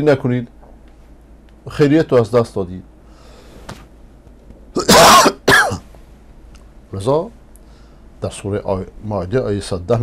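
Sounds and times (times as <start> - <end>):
man coughing: 4.8 - 5.9.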